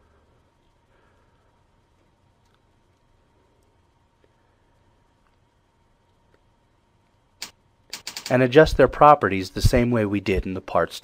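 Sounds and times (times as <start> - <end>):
faint steady hum: 0.0 - 11.0
person speaking: 8.2 - 11.0.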